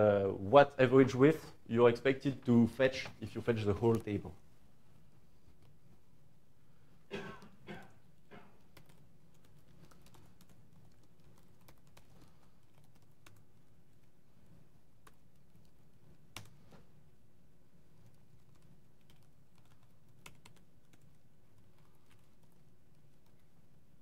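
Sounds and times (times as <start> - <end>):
low room hum: 0.0 - 24.0
laptop keyboard keystrokes: 18.0 - 23.5.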